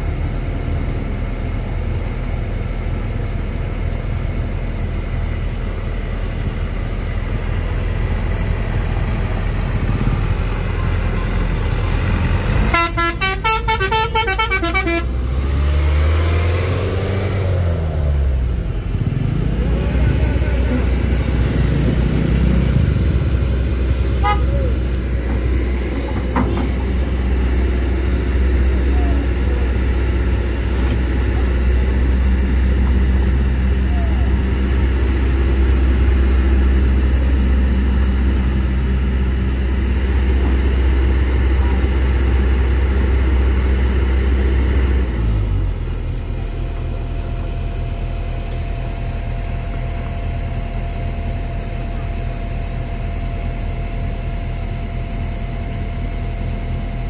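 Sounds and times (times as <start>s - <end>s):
vehicle engines running: 0.0s - 57.0s
engine revving: 8.2s - 46.0s
pulsing vehicle horn: 12.6s - 15.2s, 24.2s - 24.8s.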